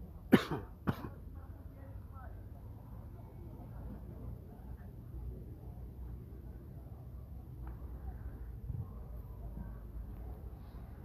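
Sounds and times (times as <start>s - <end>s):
person coughing: 0.3s - 1.2s.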